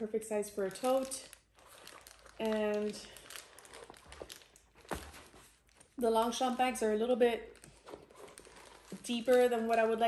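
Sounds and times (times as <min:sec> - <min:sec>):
rustling of nylon bag: 0:00.7 - 0:10.0.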